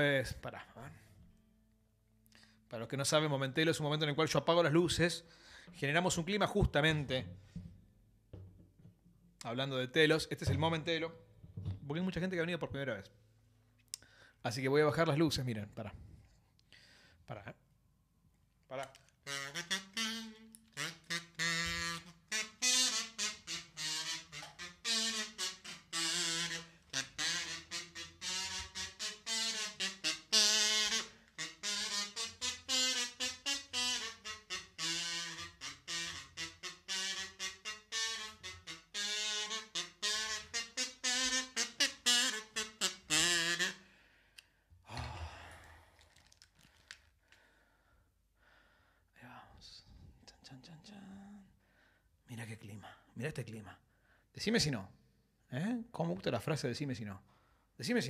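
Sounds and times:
slow saxophone melody: 18.9 - 43.9.

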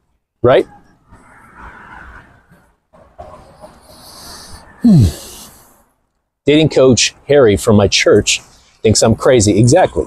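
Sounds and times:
man breathing close to microphone: 3.7 - 6.0
man humming hmm: 4.8 - 5.5.

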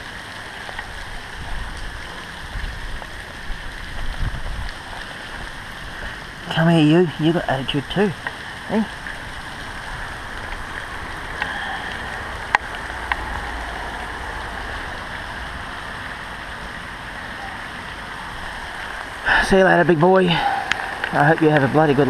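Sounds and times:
steady rain falling: 0.0 - 22.0.

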